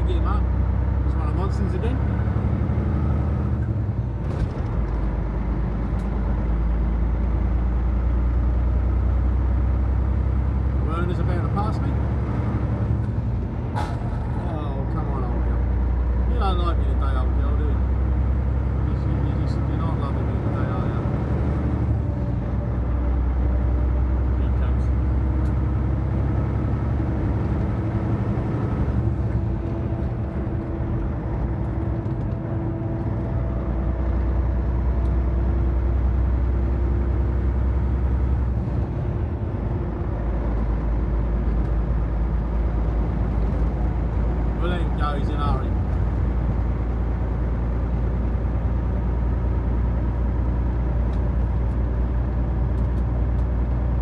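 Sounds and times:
truck engine and road noise: 0.0 - 54.0.

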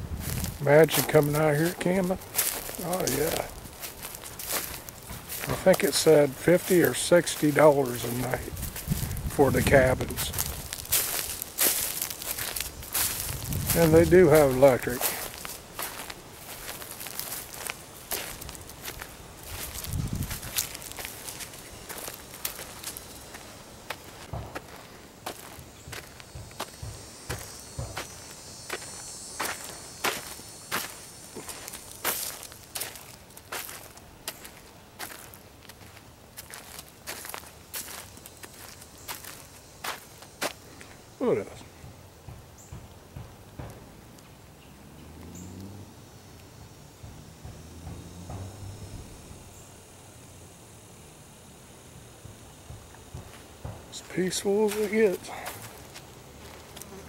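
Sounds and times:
footsteps on dirt and dry leaves: 0.0 - 41.5, 52.7 - 57.0
faint insect buzz: 0.0 - 57.0.

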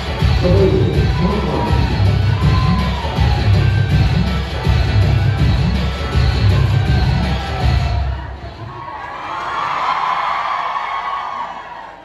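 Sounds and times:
dance song with heavy bass: 0.0 - 8.2
audience cheering and shouting: 0.0 - 12.0.

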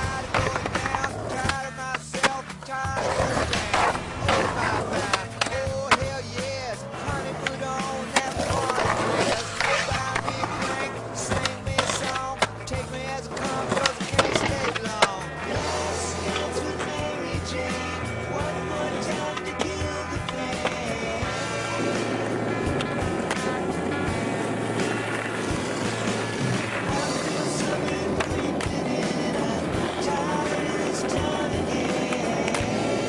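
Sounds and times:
skateboard clacks: 0.0 - 33.0
skateboard wheels rolling: 0.0 - 33.0
song with vocals and bass: 0.0 - 33.0.

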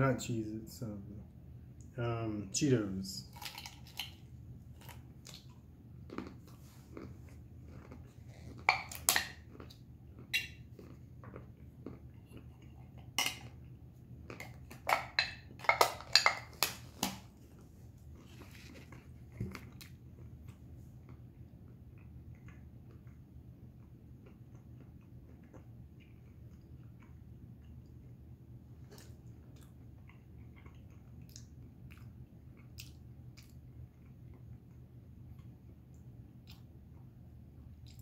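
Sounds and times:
crunching and chewing peanuts: 3.2 - 38.0.

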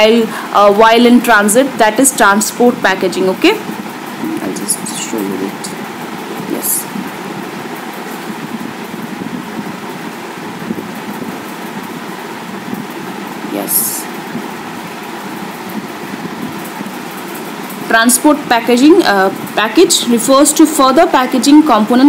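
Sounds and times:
steady background noise: 0.0 - 22.0.

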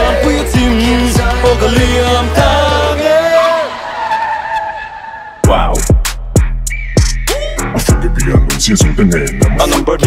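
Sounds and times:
hip-hop beat: 0.0 - 4.1, 5.4 - 10.0
car tyre screech: 3.0 - 5.5.

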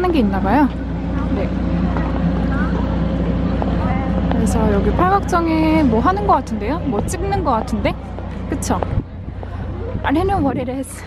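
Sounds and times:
faint crowd voices: 0.0 - 11.0
low engine hum: 0.0 - 11.0.

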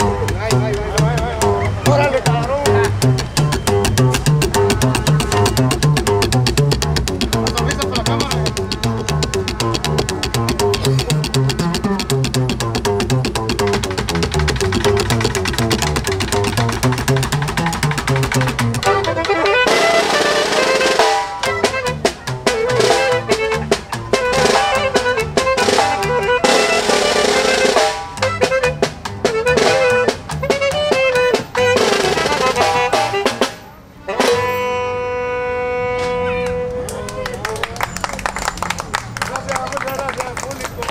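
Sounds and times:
saxophone notes: 0.0 - 38.1
accordion notes: 0.0 - 39.2
slapped upright bass: 0.0 - 40.0
band playing: 0.0 - 40.9
snare drum rolls: 3.0 - 33.6.

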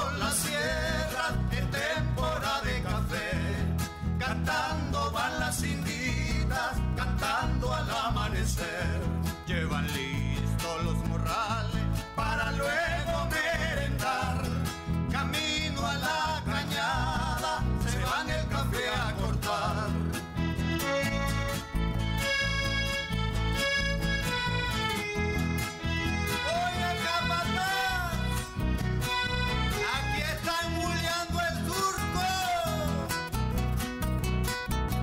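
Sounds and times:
folk dance music: 0.0 - 9.5, 10.1 - 35.0
guitar: 0.0 - 35.0.

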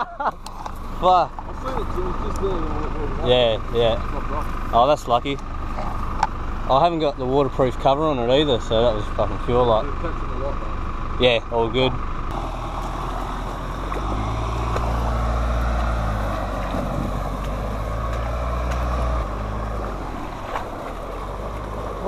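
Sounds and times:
car engine running: 0.0 - 22.0.

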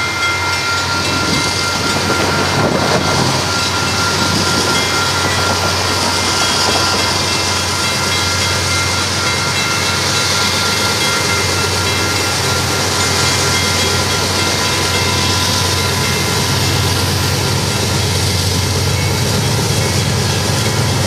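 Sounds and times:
diesel locomotive engines humming: 0.0 - 21.0
wheels rumbling on rails: 0.0 - 21.0.

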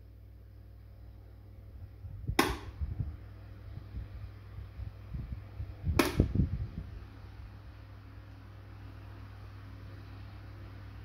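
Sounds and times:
fan humming: 0.0 - 11.0.

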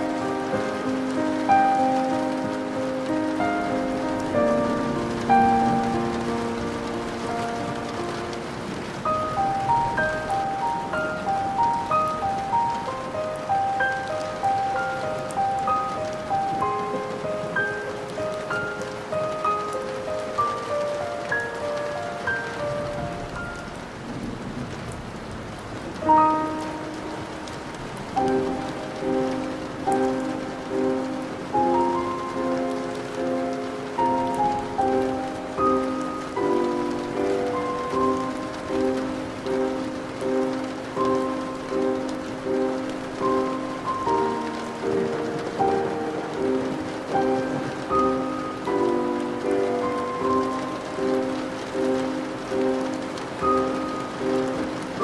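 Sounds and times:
soft pulsing melody: 0.0 - 24.0, 26.0 - 55.0
steady rain falling: 0.0 - 55.0.

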